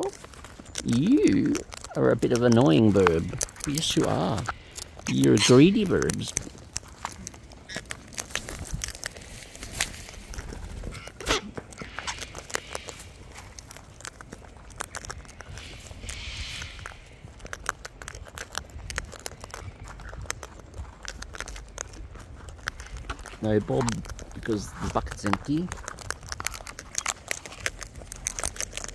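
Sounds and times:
cockatoos cracking seeds: 0.0s - 28.9s
rustling in seed trays: 0.0s - 28.9s.

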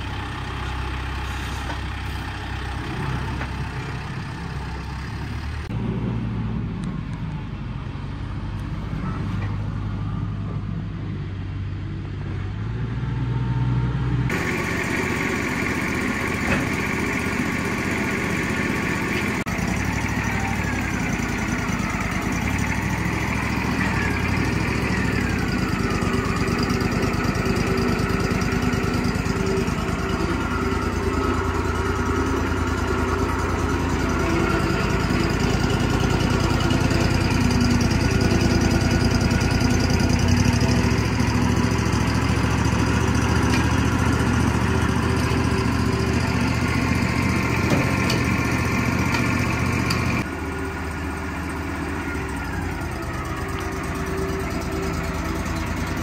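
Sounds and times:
sawmill engine running: 0.0s - 6.9s, 14.3s - 56.0s.

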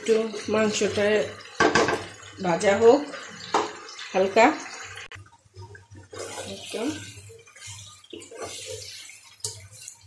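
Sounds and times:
chicken sizzling in hot oil: 0.0s - 10.0s
wooden spatula stirring in wok: 6.0s - 10.0s.

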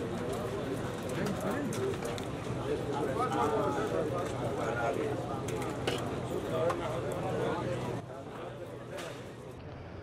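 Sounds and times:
murmur of men's voices: 0.0s - 9.6s.

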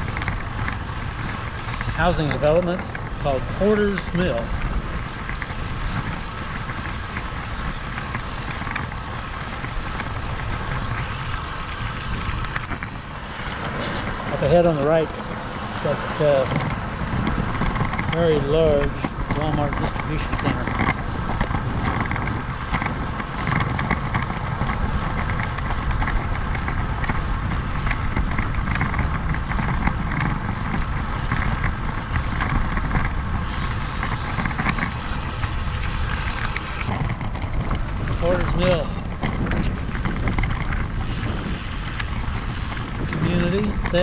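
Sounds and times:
low rumbling road noise: 0.0s - 44.0s
wind noise on microphone: 0.0s - 44.0s.

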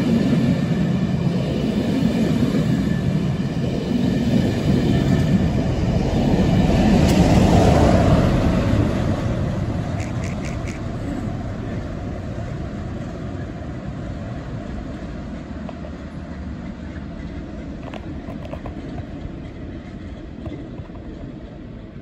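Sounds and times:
train rumble: 0.0s - 22.0s.

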